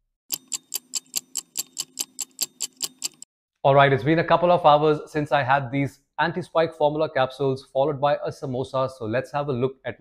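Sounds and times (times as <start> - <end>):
fast clock ticking: 0.3 - 3.3.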